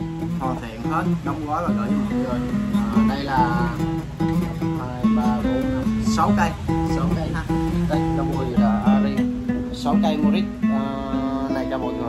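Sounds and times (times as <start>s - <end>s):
fingerstyle acoustic guitar: 0.0s - 12.0s.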